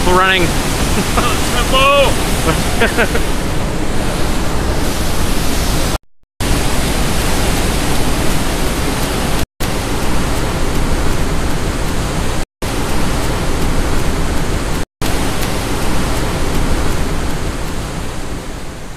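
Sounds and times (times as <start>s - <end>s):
roar of rushing water: 0.0s - 18.9s.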